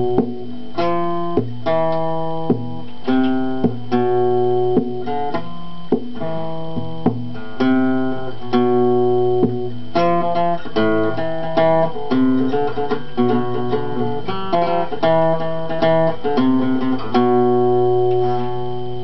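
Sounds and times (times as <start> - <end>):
acoustic guitar strumming chords: 0.0 - 19.0.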